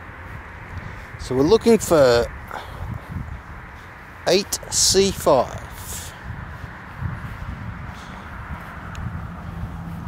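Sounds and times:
handheld camera rumble: 0:00.0 - 0:10.0.

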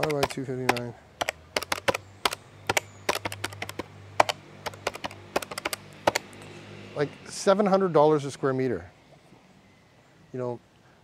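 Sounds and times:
typing clicks: 0:00.0 - 0:06.3.

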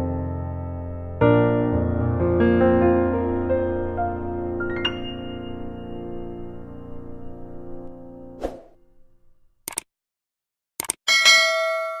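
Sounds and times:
bell ding: 0:11.1 - 0:12.0.

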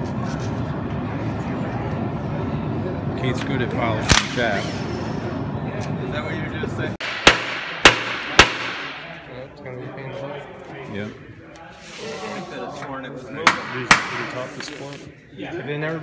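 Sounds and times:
men talking: 0:03.1 - 0:04.8, 0:05.6 - 0:07.0, 0:09.1 - 0:16.0
hammer blows on metal case: 0:07.0 - 0:09.0.

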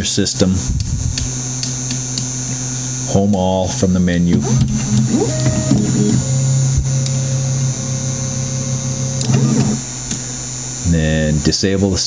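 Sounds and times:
constant low hum: 0:00.0 - 0:12.0
stepper motors droning: 0:00.0 - 0:12.0
rising-and-falling whir: 0:00.6 - 0:11.6.

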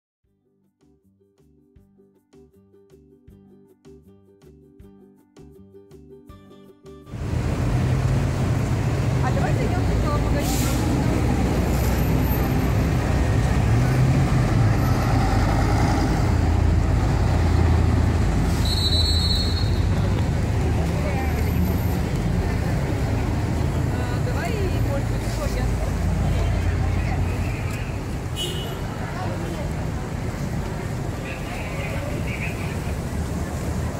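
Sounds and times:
bus and cars passing: 0:07.1 - 0:33.9
brief high squeal: 0:18.5 - 0:19.9.

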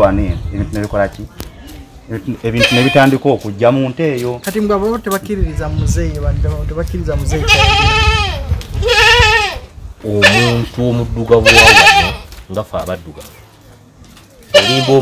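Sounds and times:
goat bleating: 0:02.5 - 0:03.2, 0:07.3 - 0:10.8, 0:11.4 - 0:12.3, 0:14.5 - 0:15.0.

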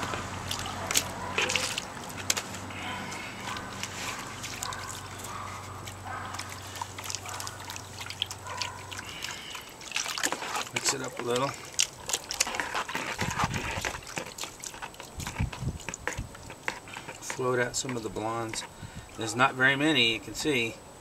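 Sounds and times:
water sloshing and trickling: 0:00.0 - 0:20.5.

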